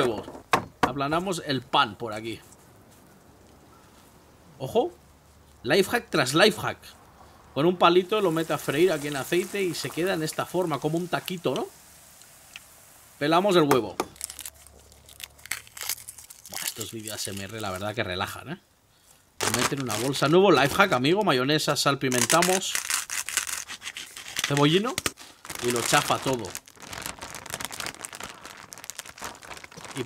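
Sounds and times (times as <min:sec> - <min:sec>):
eggshell cracking: 0:13.9 - 0:17.8
plastic bag crinkling: 0:14.0 - 0:18.0, 0:19.4 - 0:21.0, 0:22.1 - 0:30.0.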